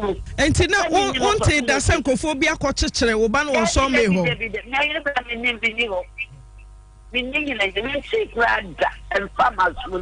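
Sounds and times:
person talking: 0:00.0 - 0:06.5
steady electrical hum: 0:00.0 - 0:10.0.

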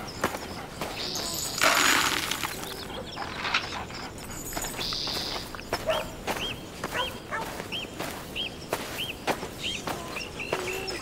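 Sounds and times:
bird chirping: 0:00.0 - 0:11.0
footsteps and scuffing: 0:00.1 - 0:11.0.

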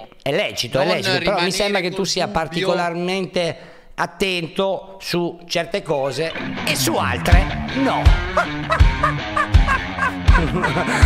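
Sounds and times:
music with steady beat: 0:06.5 - 0:11.0.

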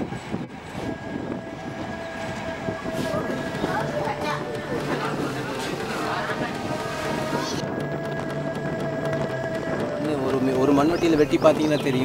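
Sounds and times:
passenger train running: 0:00.0 - 0:12.0
steady whine: 0:00.0 - 0:12.0.

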